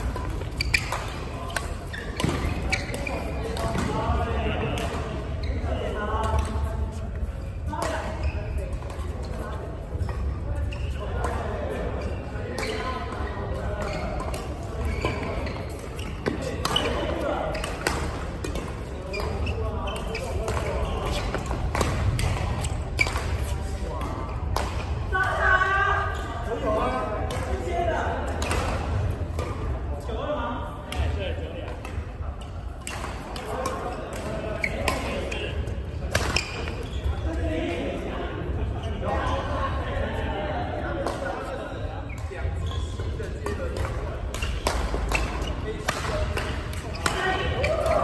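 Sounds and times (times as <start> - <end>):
rackets hitting shuttlecock: 0.0 - 4.0, 12.5 - 25.4, 36.1 - 36.8, 43.4 - 48.0.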